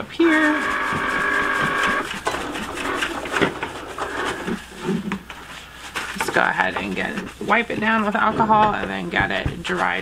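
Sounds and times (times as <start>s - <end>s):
paper towel rubbing plastic bucket: 0.0s - 10.0s
cutting machine motor whine: 0.3s - 4.7s.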